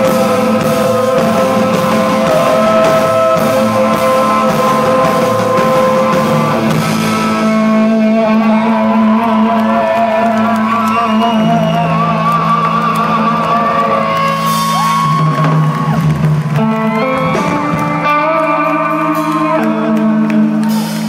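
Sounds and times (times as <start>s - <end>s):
gliding high guitar tones: 0.0s - 9.0s
electric guitars droning chords: 0.0s - 21.0s.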